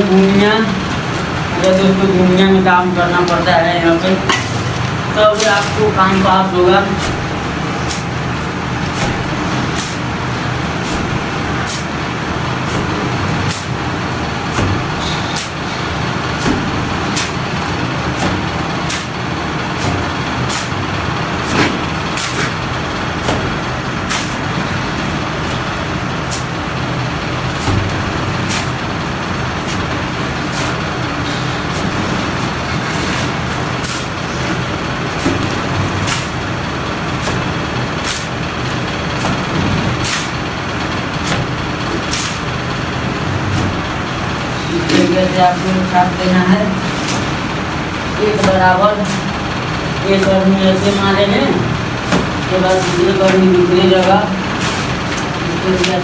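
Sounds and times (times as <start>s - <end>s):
loud steady background hum: 0.0s - 56.0s
trowel scraping and slapping mortar: 8.8s - 10.1s.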